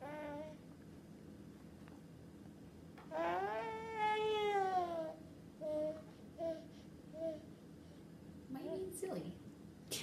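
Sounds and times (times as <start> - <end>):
baby whiny call: 3.1 - 7.4.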